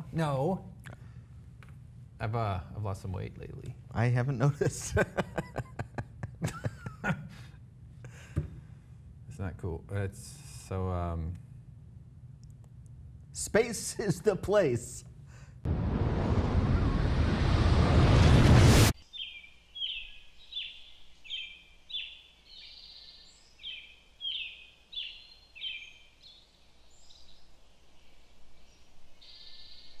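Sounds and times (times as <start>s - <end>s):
loud rushing noise: 15.7s - 19.0s
bird chirping: 19.0s - 30.0s.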